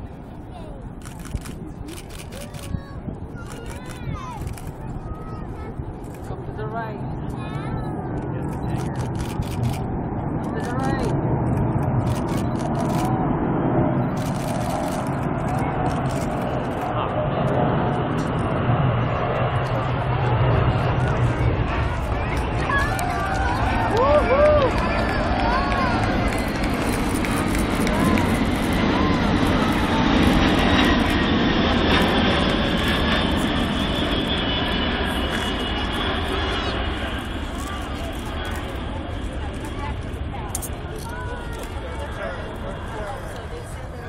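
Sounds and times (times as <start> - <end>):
faint voices of onlookers: 0.0 - 13.2, 14.1 - 44.0
jet engine noise of low flyby: 0.0 - 44.0.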